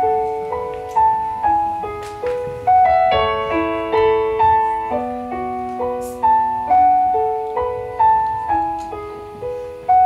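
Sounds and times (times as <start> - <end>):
piano melody on keyboard: 0.0 - 10.0.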